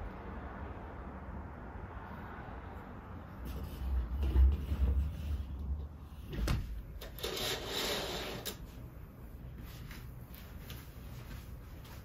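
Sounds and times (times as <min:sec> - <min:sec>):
curtain sliding along rail: 0:07.0 - 0:08.7.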